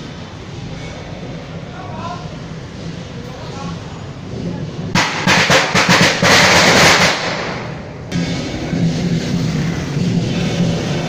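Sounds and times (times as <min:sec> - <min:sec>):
drums: 0:02.2 - 0:11.0
crashing cymbals: 0:05.0 - 0:11.0.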